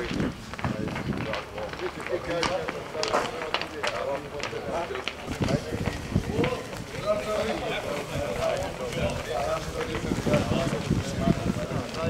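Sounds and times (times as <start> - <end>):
footsteps on hard ground: 0.0 - 12.0
men talking: 0.0 - 12.0.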